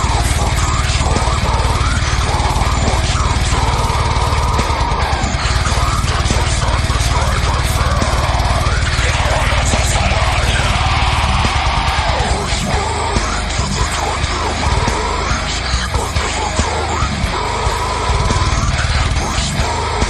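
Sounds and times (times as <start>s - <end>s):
distorted metal guitars: 0.0s - 20.0s
fast dense drumming: 0.0s - 20.0s.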